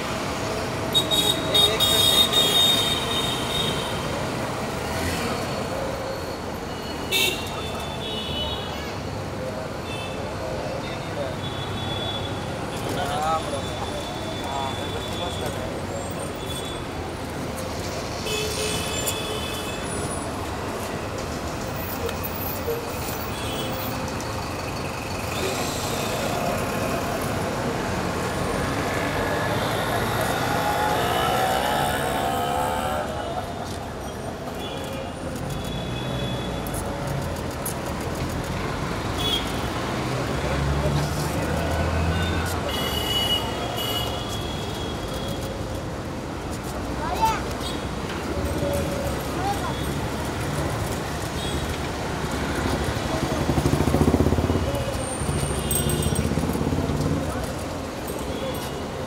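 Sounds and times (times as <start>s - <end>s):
road traffic: 0.0s - 59.0s
crowd talking: 7.5s - 19.0s, 19.8s - 59.0s.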